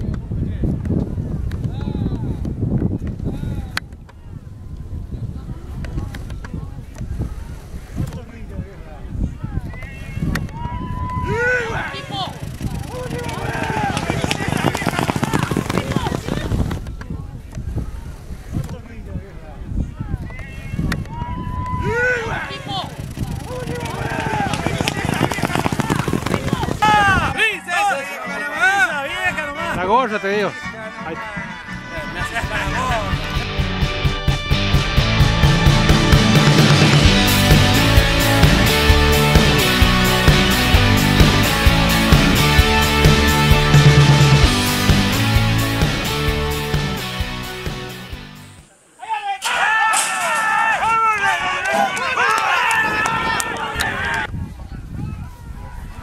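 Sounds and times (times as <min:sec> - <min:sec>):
spectators shouting and cheering: 0:09.5 - 0:16.7, 0:20.0 - 0:46.7, 0:48.9 - 0:54.3
loud high shout: 0:09.9 - 0:16.1, 0:20.4 - 0:22.9, 0:23.5 - 0:29.6, 0:49.0 - 0:54.3
race caller calling fast: 0:11.1 - 0:16.6, 0:21.8 - 0:33.2
hooves galloping on dirt: 0:11.9 - 0:17.0, 0:22.3 - 0:27.4
sharp clicks: 0:12.4 - 0:17.6, 0:22.9 - 0:26.9
music with singing: 0:30.5 - 0:48.4.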